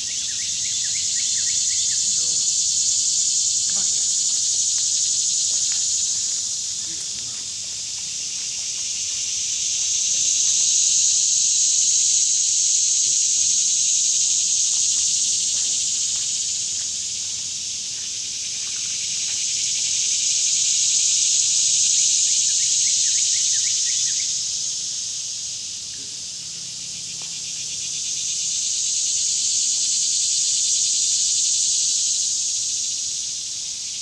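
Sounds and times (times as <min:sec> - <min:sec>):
cicadas buzzing: 0:00.0 - 0:34.0.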